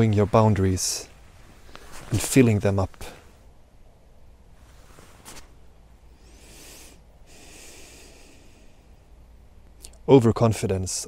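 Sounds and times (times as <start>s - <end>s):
man breathing in: 6.1s - 9.0s
man breathing out softly: 6.1s - 9.0s.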